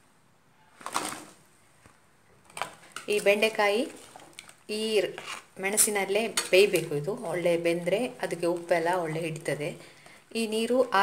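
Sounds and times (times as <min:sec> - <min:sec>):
spoon clinking and scraping pan: 0:05.1 - 0:06.9.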